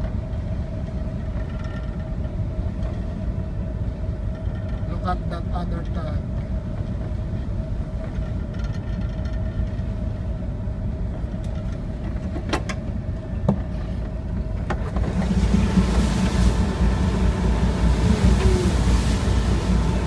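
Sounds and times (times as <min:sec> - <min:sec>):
ship engine rumbling: 0:00.0 - 0:20.0
wind: 0:00.0 - 0:20.0
sea noise: 0:14.7 - 0:20.0.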